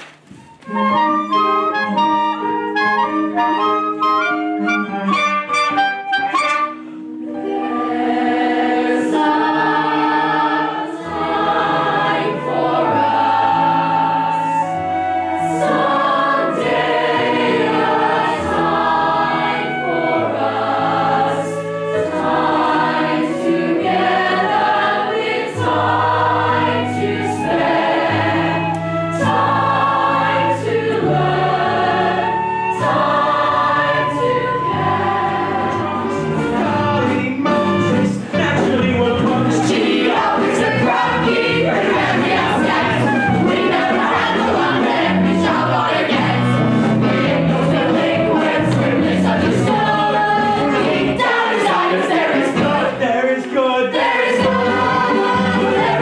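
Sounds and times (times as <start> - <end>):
instrumental accompaniment: 0.0 - 56.0
choir singing slow song: 7.3 - 37.2, 39.4 - 56.0.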